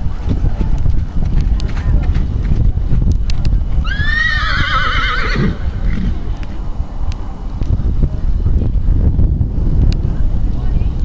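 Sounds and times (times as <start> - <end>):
wind rumble on microphone: 0.0 - 11.0
horse whinnying: 3.8 - 6.2.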